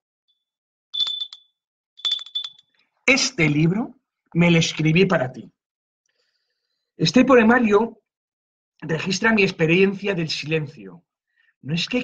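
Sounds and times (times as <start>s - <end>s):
handbell ringing: 1.0s - 1.4s, 2.0s - 2.6s.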